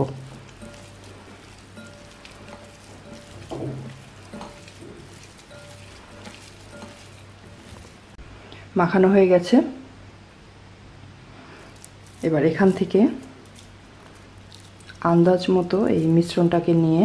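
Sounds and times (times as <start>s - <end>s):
hand squishing wet mixture: 0.0s - 8.2s, 11.6s - 17.0s
steady low hum: 0.0s - 8.8s.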